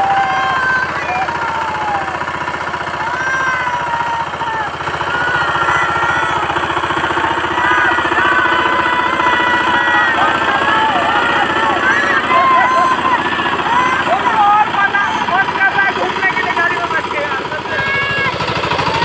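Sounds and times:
diesel power tiller chugging: 0:00.0 - 0:19.0
voices calling out: 0:00.0 - 0:19.0.

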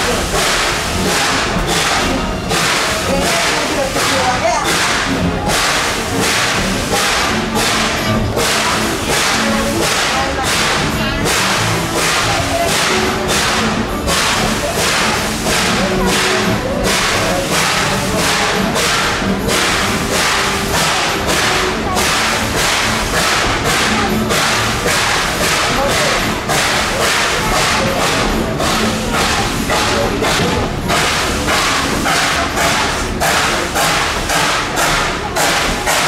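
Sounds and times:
steam locomotive chuffing: 0:00.0 - 0:36.0.

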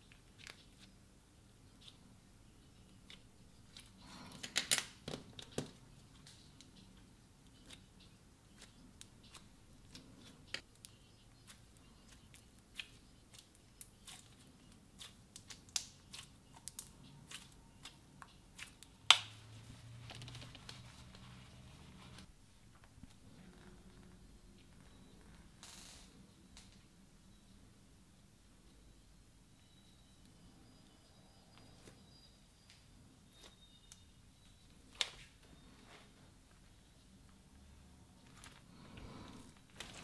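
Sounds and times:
slime crackling: 0:07.5 - 0:19.4.

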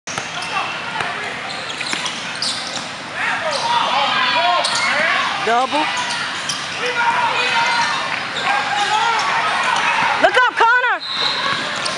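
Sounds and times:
spectators' voices and calls: 0:00.1 - 0:11.9.

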